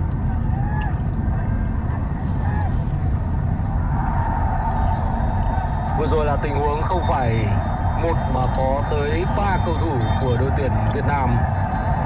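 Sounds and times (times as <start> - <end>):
football match broadcast: 0.0 - 12.0.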